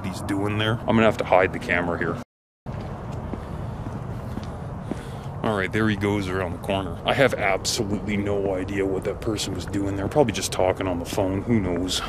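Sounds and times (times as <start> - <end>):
car and traffic rumble: 0.0 - 12.0.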